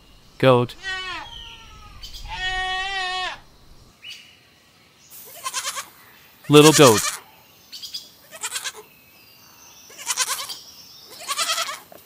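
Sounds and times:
goat bleating: 0.6s - 3.7s, 5.3s - 5.9s, 6.5s - 7.2s, 8.3s - 8.8s, 9.9s - 11.8s.

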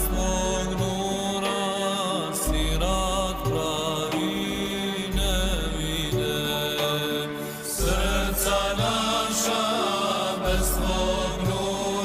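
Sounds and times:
choir singing chant-like song: 0.0s - 12.0s.

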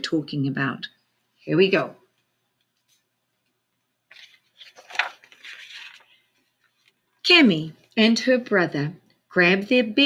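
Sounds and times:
book pages turning: 2.6s - 7.1s
page flap: 4.1s - 7.0s.

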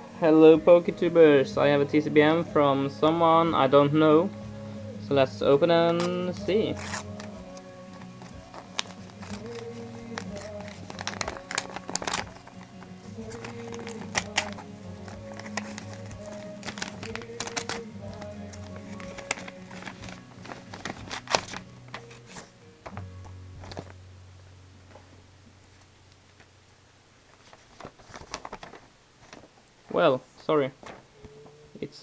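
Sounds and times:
soft background music: 0.0s - 25.5s, 30.0s - 32.0s
paper crinkling: 5.9s - 24.0s, 27.3s - 30.2s, 30.8s - 31.2s.

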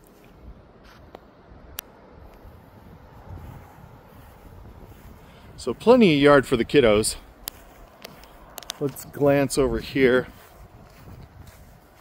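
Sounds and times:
wind rumble on microphone: 0.3s - 12.0s.

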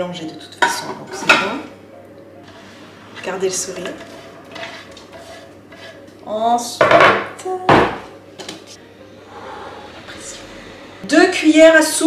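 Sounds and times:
utensils clattering: 3.2s - 6.2s.

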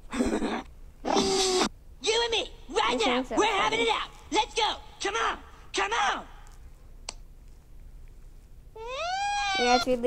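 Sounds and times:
faint hum: 0.0s - 10.0s
high-pitched meow-like cry: 8.8s - 10.0s.

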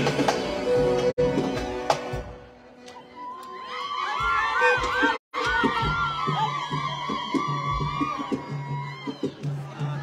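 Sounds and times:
live band music: 0.0s - 3.0s.

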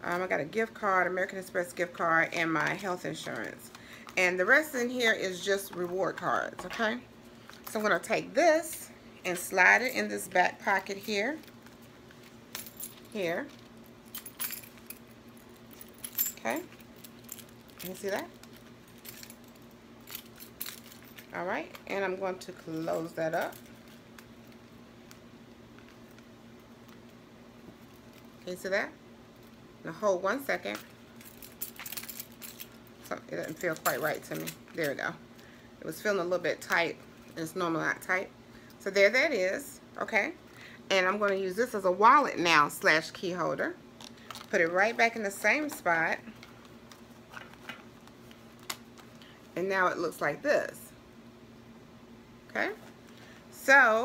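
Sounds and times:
keys clinking and jingling: 9.8s - 21.4s, 22.8s - 24.2s, 30.6s - 35.0s.

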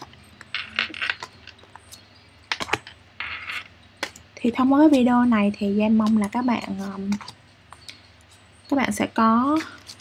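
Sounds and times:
cards tapping and clicking: 0.0s - 4.3s, 6.0s - 8.4s.

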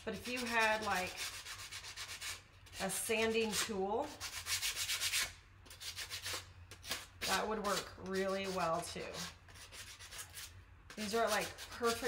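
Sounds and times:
sandpaper rubbing on wood: 0.1s - 2.4s, 3.4s - 12.0s.

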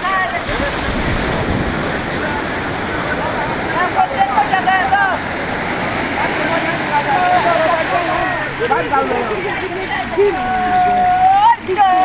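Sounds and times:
surf breaking in shallows: 0.0s - 12.0s.

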